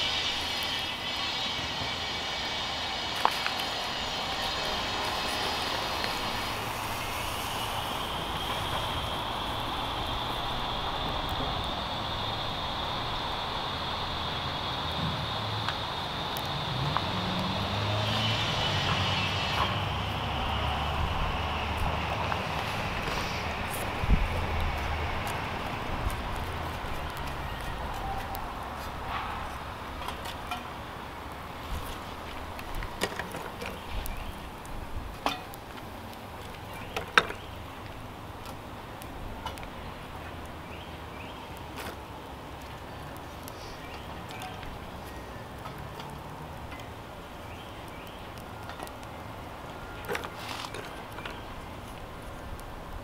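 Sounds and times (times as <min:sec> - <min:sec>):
fire crackling and popping: 0:00.0 - 0:53.0
wood fire rushing: 0:00.0 - 0:53.0.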